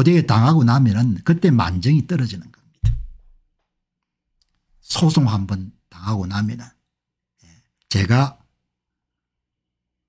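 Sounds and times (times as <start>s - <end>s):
man speaking: 4.8s - 6.8s, 7.4s - 8.4s.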